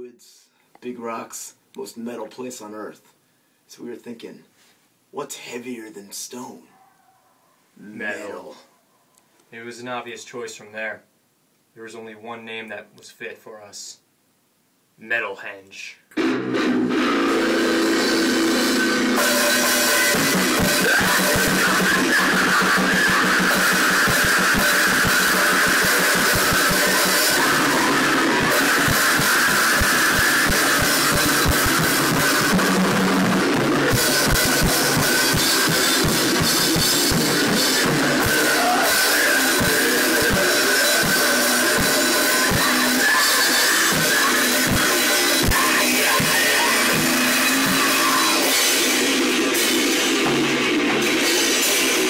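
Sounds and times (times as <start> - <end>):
crashing cymbals: 16.2 - 52.0
drum kit hits: 16.2 - 52.0
electric guitar: 16.2 - 52.0.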